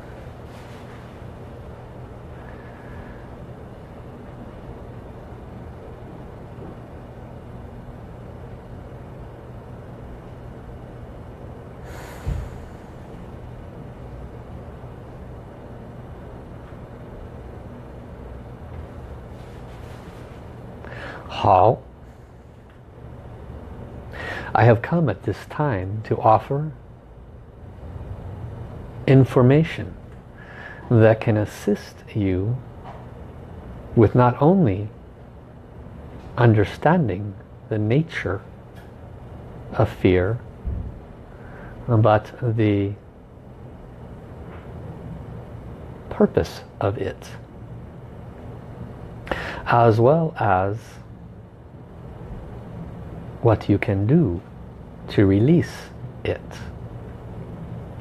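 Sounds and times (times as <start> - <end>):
low background rumble: 0.0 - 58.0
steady low hum: 0.0 - 58.0.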